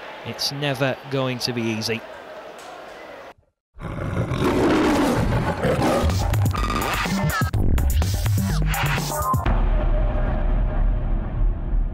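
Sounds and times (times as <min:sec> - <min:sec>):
faint stadium ambience: 0:00.0 - 0:03.4
big cat roar effect: 0:03.8 - 0:07.1
ident music: 0:05.9 - 0:09.6.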